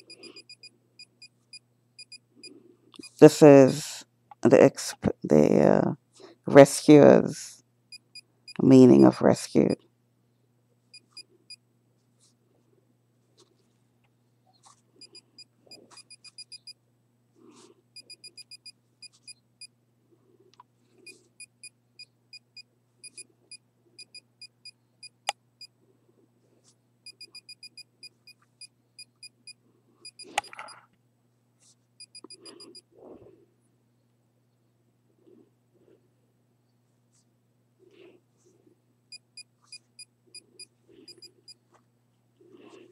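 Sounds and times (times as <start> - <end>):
rf meter high-pitched beeps: 0.0 - 2.2, 16.0 - 16.8, 18.0 - 18.8, 27.1 - 28.2, 32.0 - 32.8.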